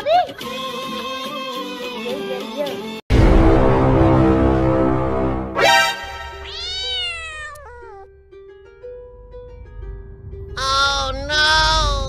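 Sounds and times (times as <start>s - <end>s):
background music: 0.0s - 12.0s
cat meowing: 6.4s - 8.1s.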